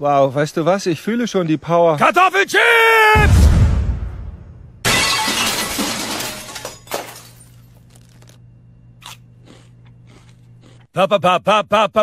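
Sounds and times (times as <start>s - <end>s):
glass smashing: 4.8s - 8.2s.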